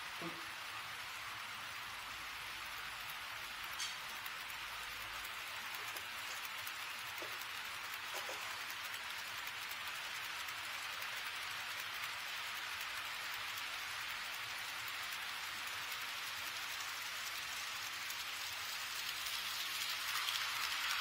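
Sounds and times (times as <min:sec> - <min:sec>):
model train wheels on rails: 0:00.0 - 0:21.0.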